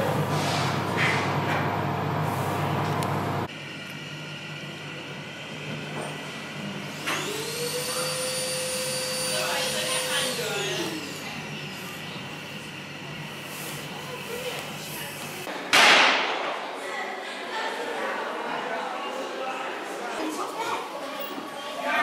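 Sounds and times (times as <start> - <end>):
low machinery hum: 0.0 - 6.9
machine whine rising in pitch: 7.0 - 11.2.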